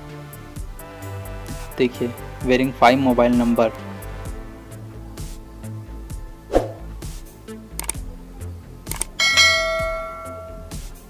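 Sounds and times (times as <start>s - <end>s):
background music with light beat: 0.0s - 11.0s
quick clicks: 7.8s - 8.0s, 8.9s - 9.2s
bright bell ding: 9.2s - 10.8s.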